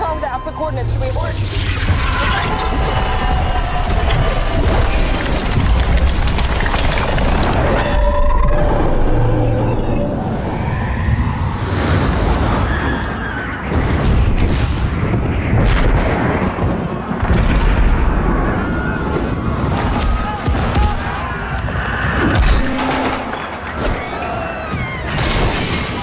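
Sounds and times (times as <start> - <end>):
film music: 0.0 - 6.1
sharp booms and impacts: 13.6 - 20.7.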